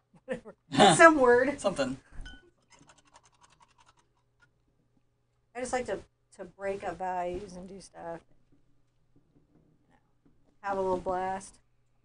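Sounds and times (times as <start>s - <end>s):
paintbrush scratchy ticks: 2.7s - 4.6s.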